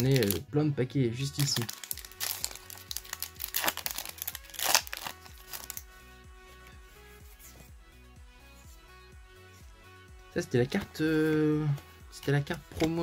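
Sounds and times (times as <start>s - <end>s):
foil wrapper crinkling and ripping: 0.0s - 0.4s, 1.2s - 5.8s
soft background music: 0.0s - 13.0s.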